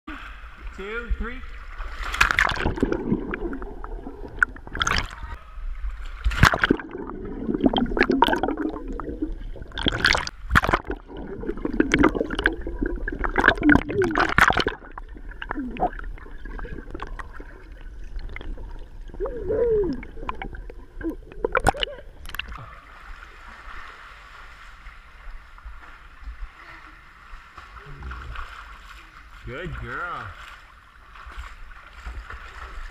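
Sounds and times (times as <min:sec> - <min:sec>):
pool water splashing: 0:00.1 - 0:32.9.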